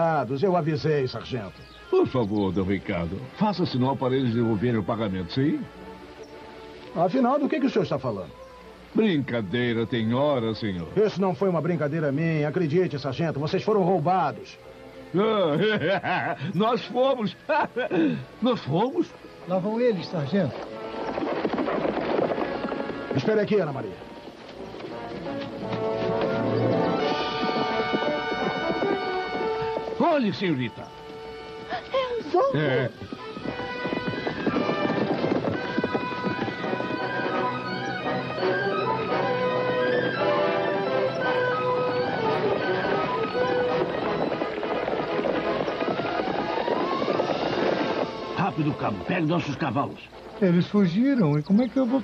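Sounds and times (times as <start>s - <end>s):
horses galloping hoofbeats: 0.0s - 52.0s
dramatic music score: 13.9s - 35.3s.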